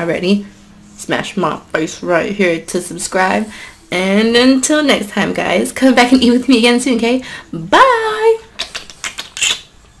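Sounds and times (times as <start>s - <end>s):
woman saying bye: 7.6s - 8.5s
smacking kisses: 8.5s - 9.9s.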